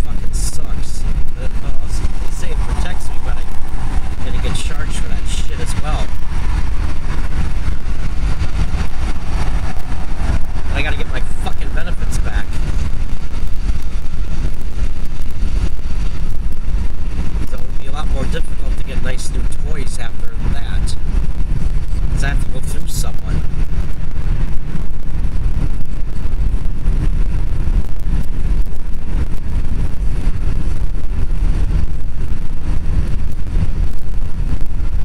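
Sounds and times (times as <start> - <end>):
car tyres and engine rumbling: 0.0 - 35.0.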